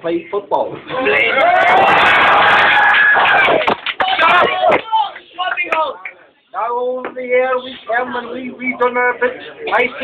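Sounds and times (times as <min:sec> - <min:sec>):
crowd cheering and clapping: 0:01.2 - 0:06.0.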